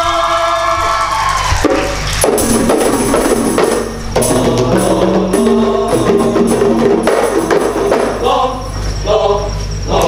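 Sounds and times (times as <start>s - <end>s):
frame drums: 1.5s - 8.4s
man singing a long note: 4.2s - 6.7s.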